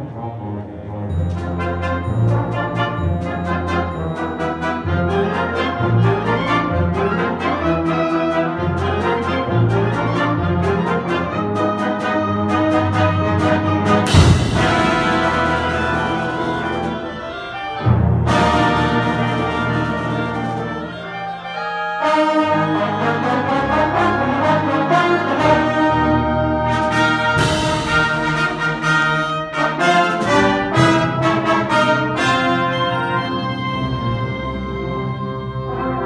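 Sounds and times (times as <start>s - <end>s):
concert band playing: 9.0s - 22.1s, 23.8s - 35.2s.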